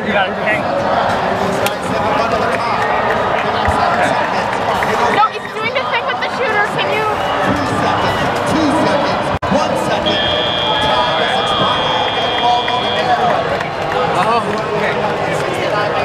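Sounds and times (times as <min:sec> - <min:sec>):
arena crowd voices: 0:00.0 - 0:16.0.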